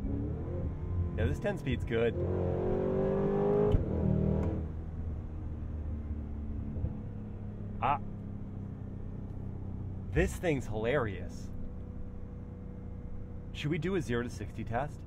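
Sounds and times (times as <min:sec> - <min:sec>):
car engine accelerating hard: 0:00.0 - 0:04.7.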